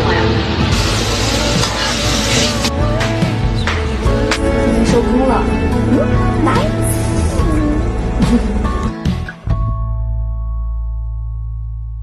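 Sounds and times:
background music: 0:00.0 - 0:12.0
food sizzling in hot oil: 0:00.7 - 0:02.7.

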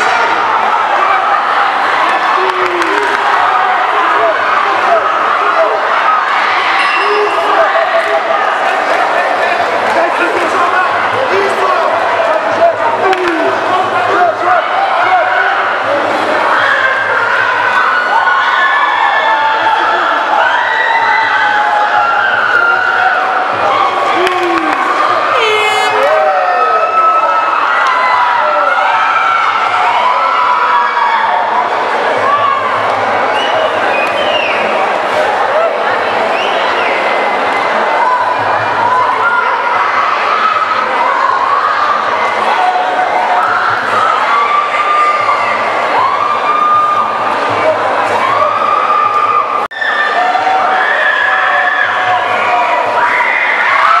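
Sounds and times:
crowd shouting and cheering: 0:00.0 - 0:54.0
single shouted voices: 0:16.5 - 0:34.7.

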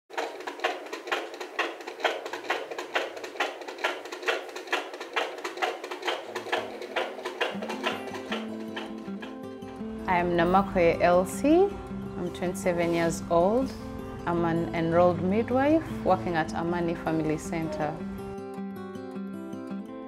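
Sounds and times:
soft music: 0:06.4 - 0:20.0.

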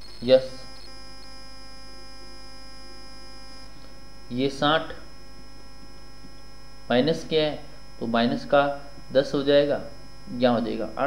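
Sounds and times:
electrical mains hum: 0:00.0 - 0:11.0
faint high-pitched whine: 0:00.0 - 0:11.0.

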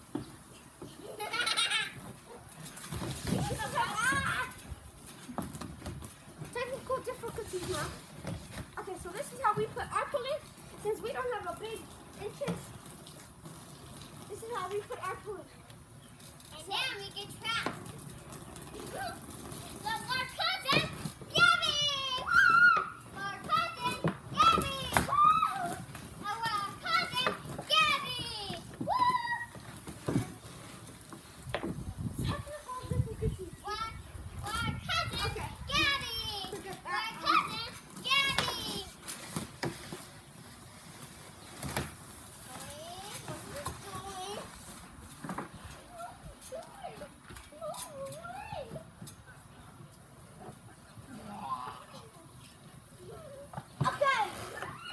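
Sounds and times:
children shouting and squealing: 0:03.2 - 0:04.8, 0:18.7 - 0:30.5, 0:32.2 - 0:39.0, 0:45.7 - 0:49.1, 0:50.4 - 0:54.9.

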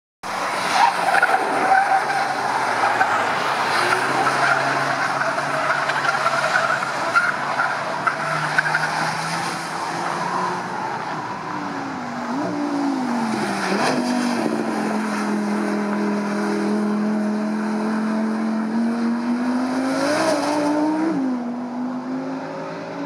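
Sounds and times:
race car engines at high revs: 0:00.2 - 0:23.0.

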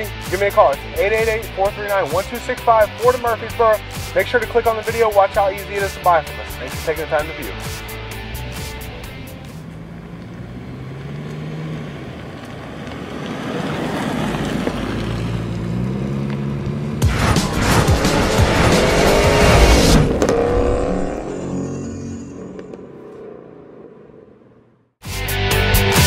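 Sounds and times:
music: 0:00.0 - 0:09.6, 0:17.0 - 0:20.1, 0:25.0 - 0:26.0
engine revving: 0:00.0 - 0:24.9
engine-like drone: 0:00.0 - 0:24.9.

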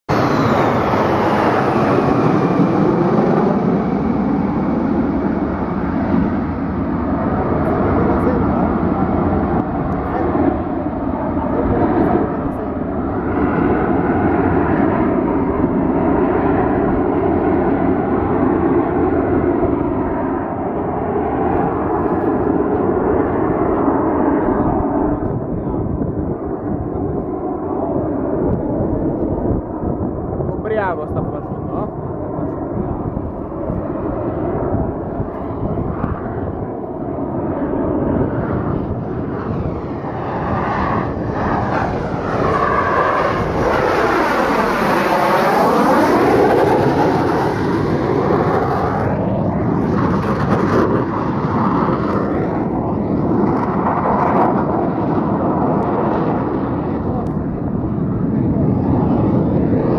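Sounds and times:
high jet whine falling in pitch: 0:00.0 - 0:59.9
jet roar: 0:00.0 - 0:59.9.

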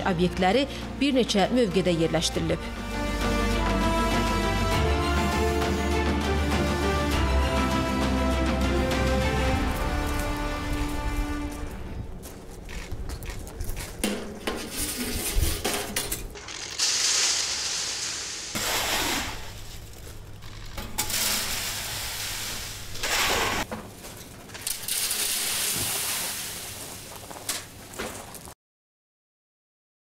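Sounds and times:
shovel scraping on metal: 0:14.0 - 0:26.8
sand pouring down metal chute: 0:16.4 - 0:19.6, 0:21.0 - 0:23.7, 0:24.6 - 0:28.4.

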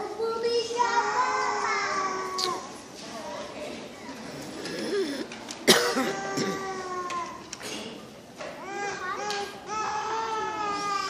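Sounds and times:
murmur of audience voices: 0:00.0 - 0:11.0
person coughing: 0:04.9 - 0:06.7.

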